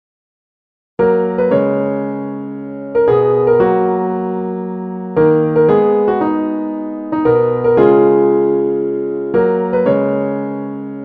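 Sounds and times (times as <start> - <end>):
piano chords ringing: 1.0 - 11.0.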